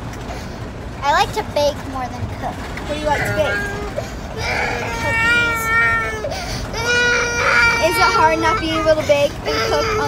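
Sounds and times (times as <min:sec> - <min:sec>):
toddler crying: 0:03.2 - 0:10.0.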